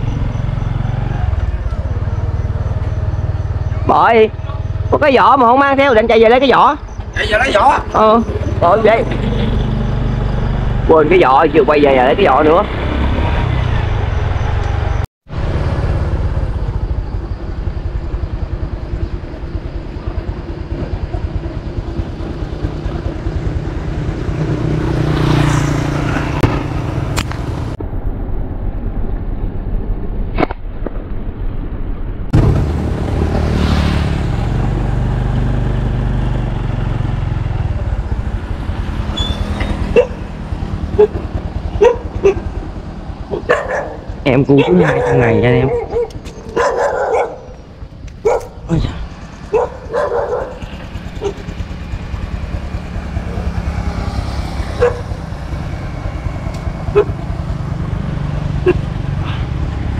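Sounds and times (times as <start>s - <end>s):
motorbike engine: 0.0s - 27.8s, 32.3s - 59.9s.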